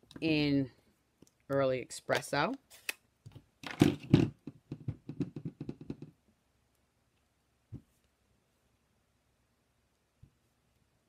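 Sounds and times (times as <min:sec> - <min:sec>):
sharp plastic knocks: 0:03.3 - 0:06.1.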